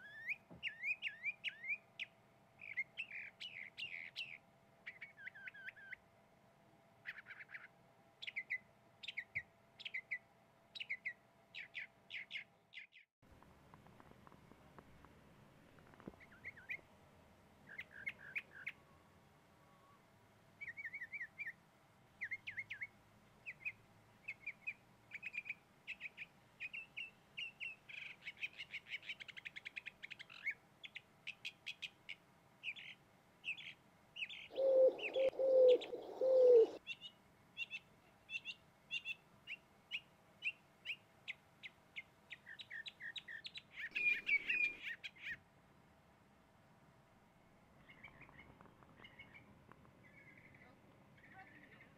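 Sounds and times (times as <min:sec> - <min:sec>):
small birds chirping: 0:00.0 - 0:06.0, 0:07.0 - 0:13.1, 0:15.9 - 0:16.9, 0:17.6 - 0:19.0, 0:20.6 - 0:21.6, 0:22.2 - 0:45.4, 0:47.8 - 0:51.9
bird giving loud low coos: 0:34.5 - 0:36.8, 0:43.8 - 0:45.0.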